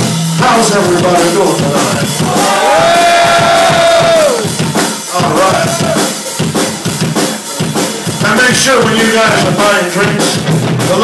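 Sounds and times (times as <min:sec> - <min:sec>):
drum kit pounding: 0:00.0 - 0:11.0
live rock band playing loud: 0:00.0 - 0:11.0.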